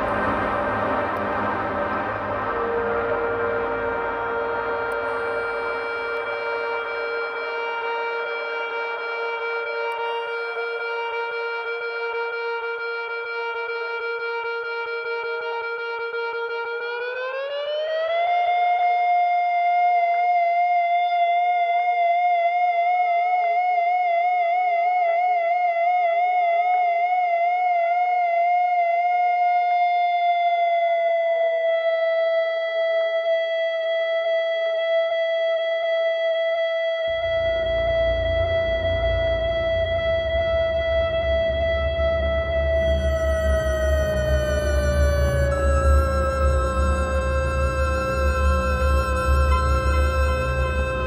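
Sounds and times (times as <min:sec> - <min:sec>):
low rough drone: 0:00.0 - 0:12.4, 0:37.1 - 0:51.0
slow chamber music: 0:00.0 - 0:15.8, 0:36.6 - 0:51.0.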